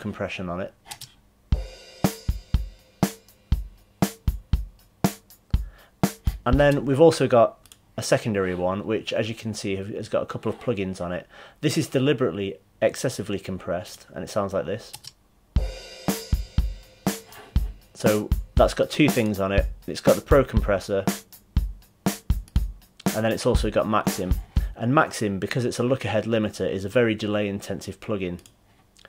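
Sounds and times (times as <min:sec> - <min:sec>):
cymbal and hi-hat wash: 0:01.5 - 0:06.8, 0:15.6 - 0:24.8
drum kit beat: 0:01.5 - 0:07.0, 0:15.6 - 0:24.8.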